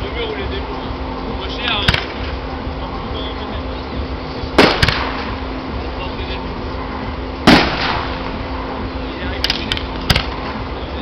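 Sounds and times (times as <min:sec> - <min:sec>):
firework shells bursting: 0:04.6 - 0:05.4, 0:07.5 - 0:08.4.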